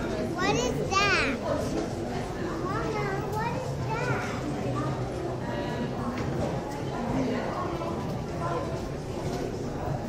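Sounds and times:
chatter of many people: 0.0s - 10.0s.

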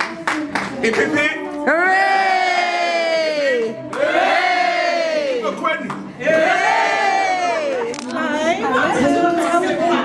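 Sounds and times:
group of people cheering: 1.7s - 5.6s, 6.2s - 8.0s.

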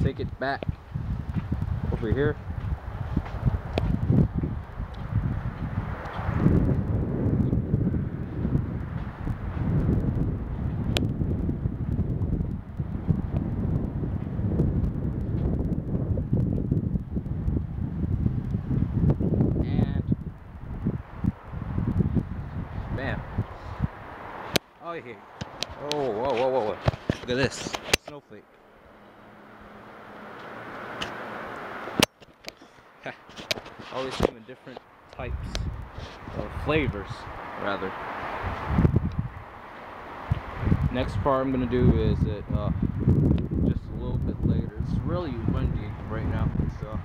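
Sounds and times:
wind buffeting microphone: 0.0s - 28.2s, 31.9s - 47.0s.

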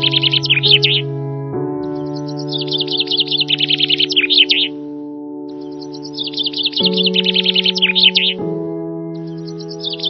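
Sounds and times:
small bird chirping: 0.0s - 1.0s, 1.8s - 4.8s, 5.5s - 8.4s, 9.2s - 10.0s
slow ambient music: 0.0s - 10.0s.

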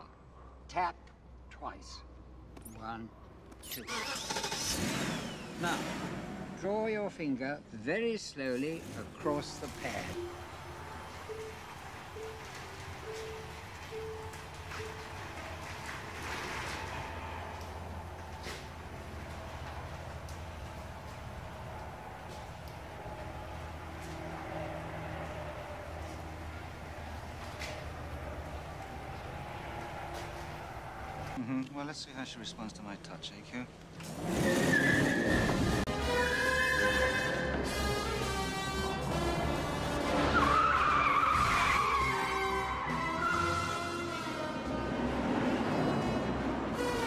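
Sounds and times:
car rolling slowly: 8.8s - 31.4s
film score music: 8.9s - 31.4s, 35.5s - 47.0s.

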